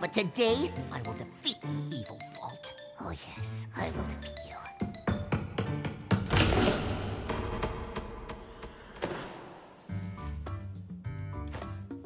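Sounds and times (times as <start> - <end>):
cartoon background music: 0.0 - 8.2
running footsteps on wooden floor: 4.7 - 6.4.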